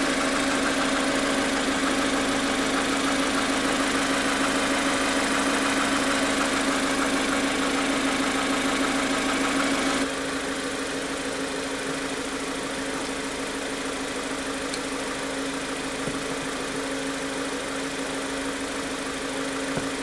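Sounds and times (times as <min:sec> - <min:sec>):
car engine idling: 0:00.0 - 0:20.0.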